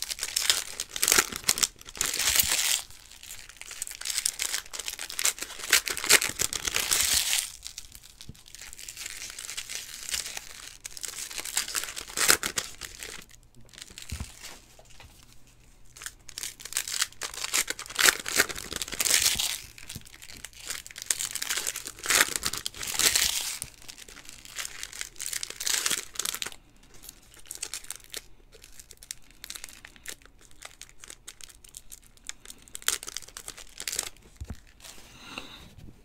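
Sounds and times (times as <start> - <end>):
wrappers tearing and crinkling: 0.0 - 35.0.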